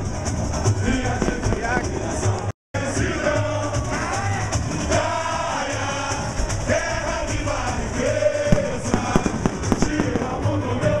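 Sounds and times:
samba music with singing: 0.0 - 11.0
sharp cracking hits: 8.5 - 10.6.

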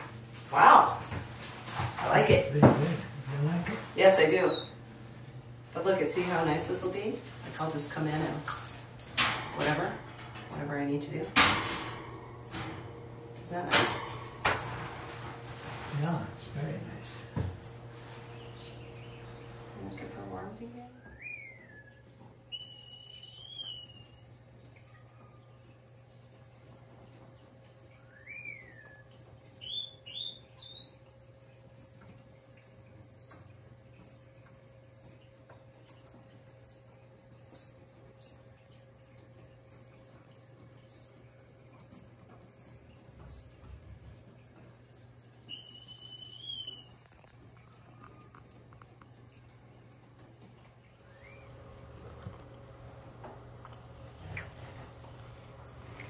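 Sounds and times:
faint steady hum: 0.0 - 56.0
small birds chirping: 3.7 - 11.3, 12.4 - 24.2, 28.0 - 38.5, 39.5 - 50.1, 50.7 - 56.0.

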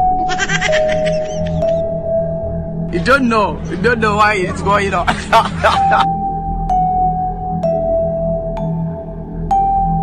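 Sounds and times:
background music with held tone: 0.0 - 10.0.

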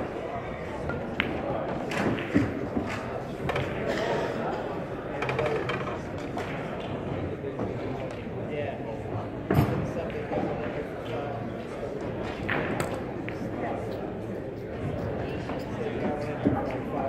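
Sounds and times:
murmur of voices: 0.0 - 17.0.

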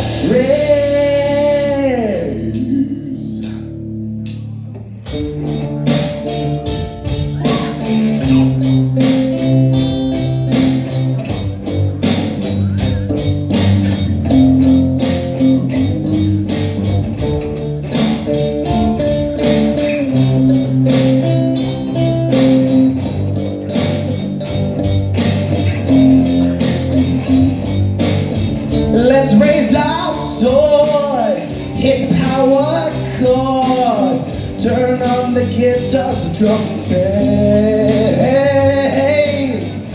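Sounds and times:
steady drum beat: 0.0 - 2.8, 5.1 - 39.9
bass guitar: 0.0 - 39.9
electric guitars: 0.0 - 39.9.

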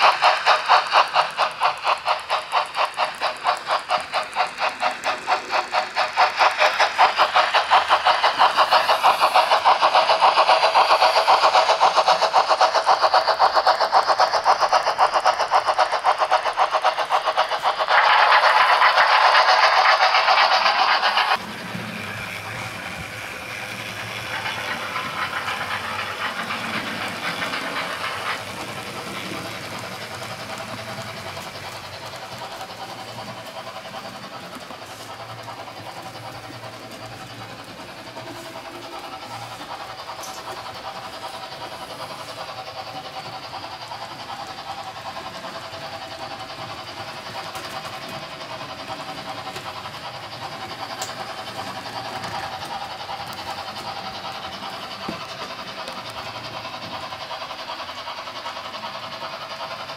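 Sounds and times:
model steam locomotive chuffing: 0.0 - 59.9.

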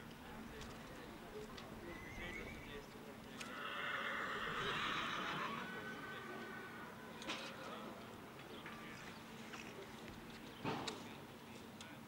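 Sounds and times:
horse whinnying: 1.9 - 2.7, 3.4 - 7.0.

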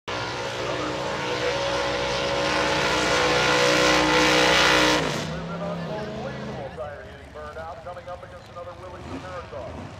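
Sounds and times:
race car engine revving: 0.1 - 9.9
announcer speaking over loudspeaker: 4.2 - 9.8.

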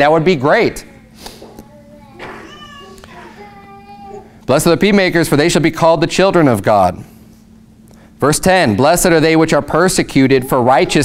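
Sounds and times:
child vocalizing: 1.0 - 4.4.

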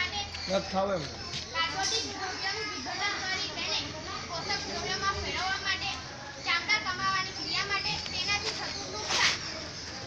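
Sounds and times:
children's voices in background: 0.0 - 10.0
girl talking: 1.5 - 9.2.

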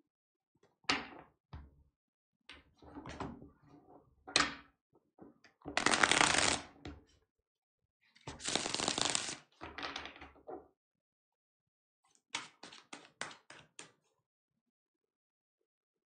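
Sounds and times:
cards being shuffled: 5.8 - 6.6, 8.3 - 9.4.

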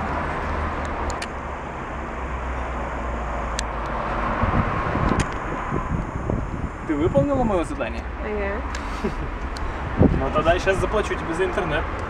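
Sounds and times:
hum of passing cars: 0.0 - 12.0
low traffic rumble: 0.0 - 12.0.

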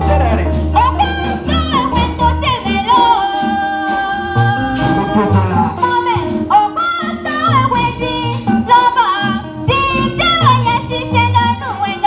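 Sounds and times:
shaken percussion beat: 0.0 - 12.0.

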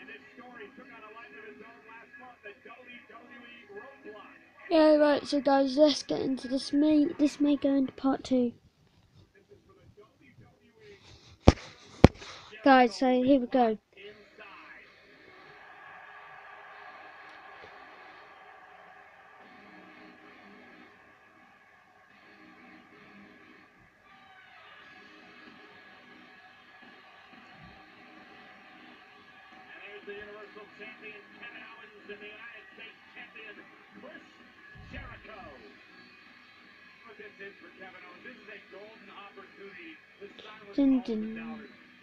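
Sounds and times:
television music: 0.0 - 42.0
commentators talking: 4.7 - 8.5, 40.3 - 41.7.

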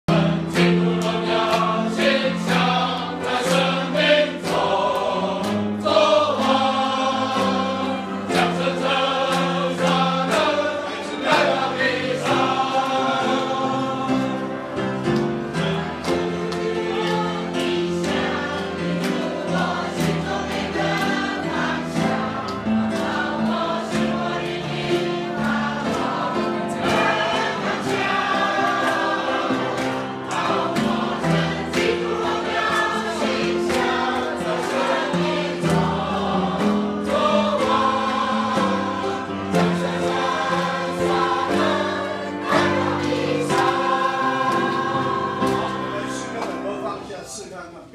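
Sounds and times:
congregation singing a hymn: 0.0 - 47.6.

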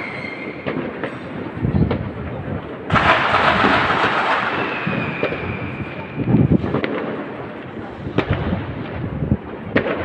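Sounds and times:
thin steady whistle: 0.0 - 0.7, 4.5 - 6.3
fireworks bursting and crackling: 0.0 - 10.0.

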